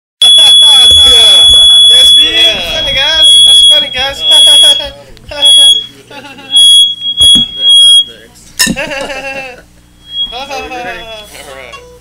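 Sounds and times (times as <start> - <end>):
steady high-pitched tone: 0.3 - 5.9, 10.0 - 11.4
people talking: 2.2 - 6.6, 7.4 - 11.9.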